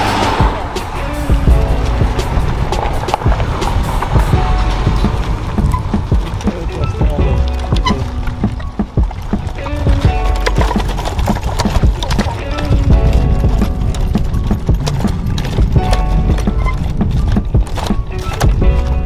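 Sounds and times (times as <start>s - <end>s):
music playing: 0.0s - 19.0s
wooden handcart clattering on road: 0.0s - 19.0s.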